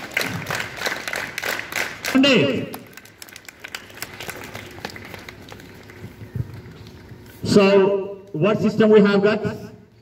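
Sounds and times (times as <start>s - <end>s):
people clapping: 0.0s - 7.4s.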